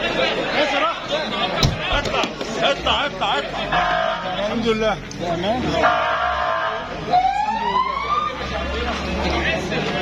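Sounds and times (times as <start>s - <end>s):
crowd voices: 0.0s - 10.0s
emergency vehicle siren wailing: 5.8s - 8.8s.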